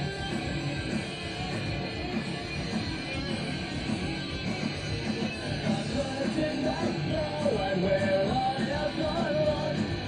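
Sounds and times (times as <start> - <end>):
punk rock band playing: 0.0 - 10.0
person singing: 5.5 - 10.0.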